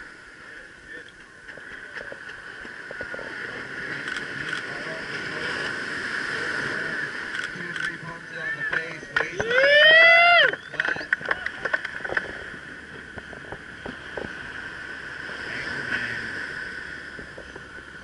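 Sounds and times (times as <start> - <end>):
surf washing up the beach: 0.0 - 18.0
person whooping loudly: 9.4 - 10.6.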